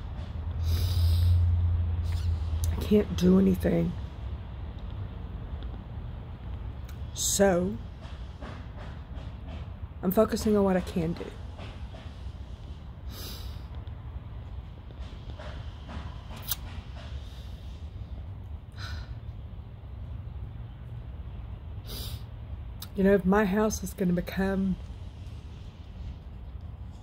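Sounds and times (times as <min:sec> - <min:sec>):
low steady rumble: 0:00.0 - 0:08.2
steady low rumble: 0:00.0 - 0:27.0
woman sniffing: 0:00.6 - 0:02.5, 0:13.1 - 0:13.7, 0:21.9 - 0:22.3.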